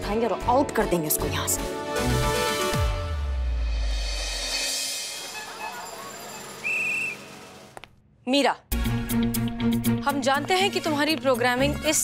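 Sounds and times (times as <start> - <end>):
background music: 0.0 - 12.0
high whistle blast: 5.0 - 7.6.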